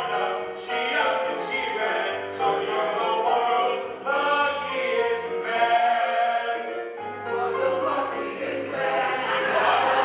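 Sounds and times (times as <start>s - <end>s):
group singing a musical number: 0.0s - 10.0s.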